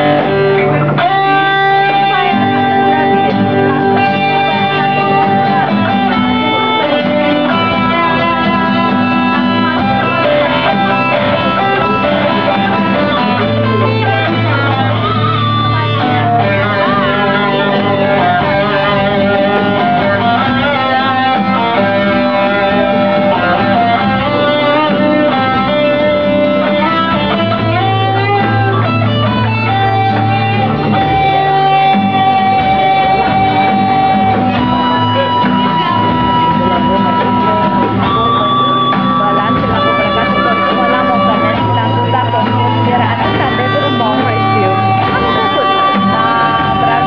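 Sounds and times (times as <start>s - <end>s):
electric and acoustic guitars: 0.0s - 47.0s.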